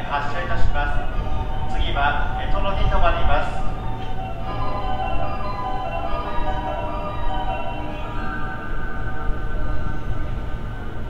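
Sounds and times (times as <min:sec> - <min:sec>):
electronic chime melody over speakers: 0:00.2 - 0:11.0.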